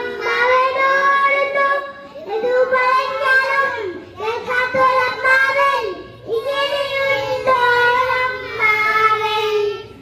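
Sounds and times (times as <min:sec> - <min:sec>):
children singing together: 0:00.0 - 0:10.0.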